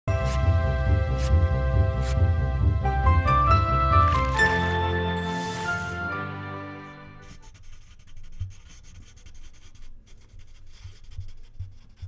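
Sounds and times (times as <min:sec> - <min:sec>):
pencil scratching on paper: 0:06.8 - 0:12.0.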